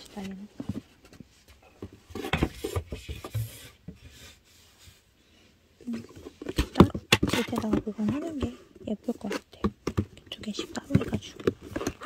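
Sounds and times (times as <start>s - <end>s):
cardboard boxes scraping: 5.9s - 9.5s.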